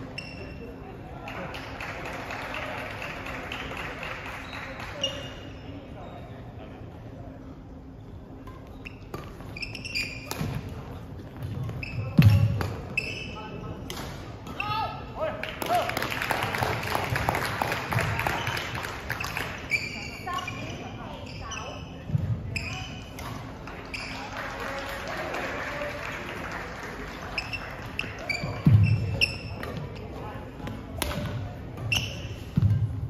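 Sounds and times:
voices in a hall: 0.0 - 33.0
sneakers squeaking on wooden floor: 8.5 - 10.7, 11.3 - 13.4, 19.2 - 24.2, 27.4 - 30.2, 31.8 - 32.8.

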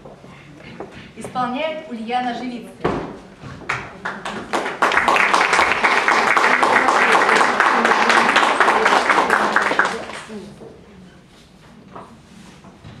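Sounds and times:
audience applauding: 3.7 - 10.4.

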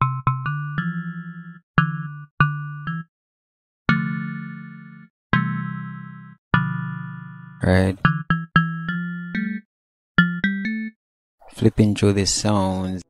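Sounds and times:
electric piano chords: 0.0 - 3.1, 3.9 - 10.9.

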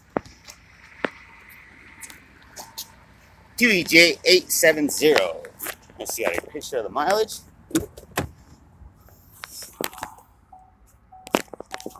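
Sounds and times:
car warning chime beeps: 10.5 - 11.9.

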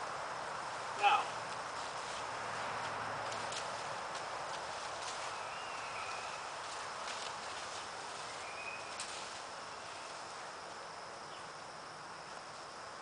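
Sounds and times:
outdoor hiss: 0.0 - 13.0
faint thin whistle: 8.4 - 9.1.

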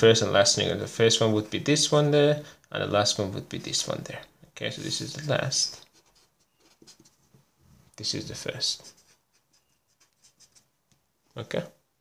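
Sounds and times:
marker pen scratching on paper: 5.0 - 7.4, 8.6 - 10.8.

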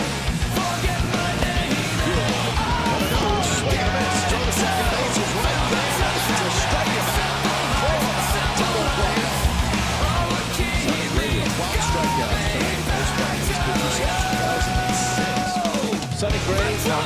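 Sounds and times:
hard rock music: 0.0 - 17.0
person singing: 0.5 - 17.0.

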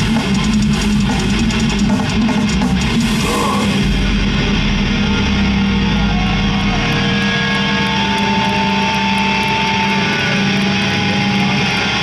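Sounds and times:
death metal band live: 0.0 - 12.0.

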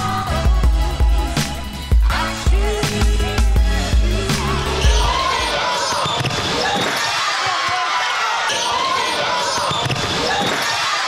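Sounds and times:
chatter and shouts: 4.3 - 11.0.

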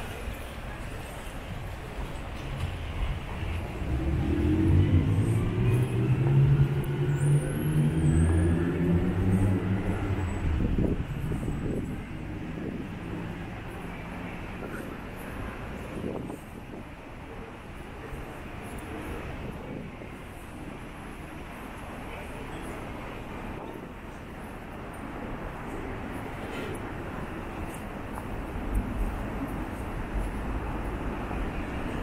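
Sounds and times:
vehicle engine passing: 3.7 - 11.6.

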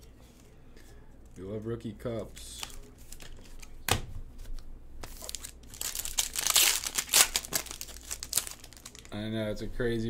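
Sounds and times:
foil wrapper crinkling and tearing: 5.0 - 9.2.

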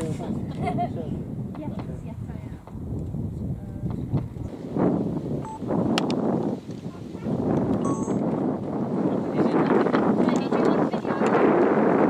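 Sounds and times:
wind gusting over microphone: 0.0 - 12.0.

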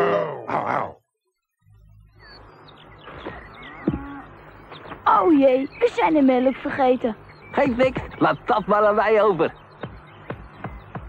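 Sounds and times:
low steady hum: 0.0 - 9.9
birds chirping: 0.0 - 11.0.

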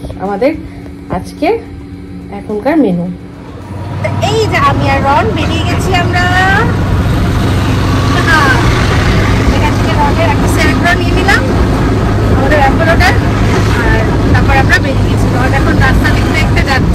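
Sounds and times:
woman speaking: 0.0 - 1.7, 2.3 - 3.2, 4.0 - 6.8, 8.0 - 8.8, 9.4 - 11.5, 12.3 - 16.9
auto-rickshaw engine hum: 0.0 - 16.9
road rumble: 0.0 - 16.9.

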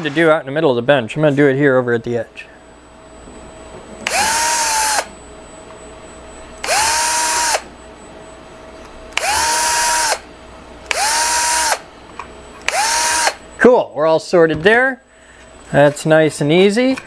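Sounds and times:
electric drill drilling plastic: 4.1 - 5.1, 6.6 - 7.7, 9.2 - 10.2, 10.9 - 11.8, 12.6 - 13.4.

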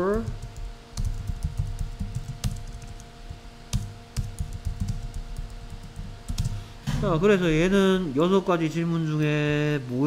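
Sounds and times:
typing on computer keyboard: 0.0 - 3.1, 3.7 - 6.6.

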